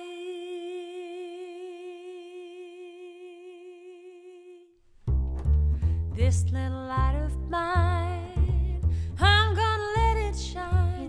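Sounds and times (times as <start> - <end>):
woman singing a long note: 0.0 - 4.7.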